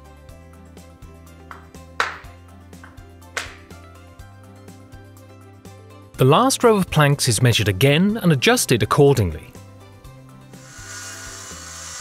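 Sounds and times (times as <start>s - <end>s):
background music with bass: 0.0s - 11.0s
power saw cutting wood: 10.6s - 12.0s.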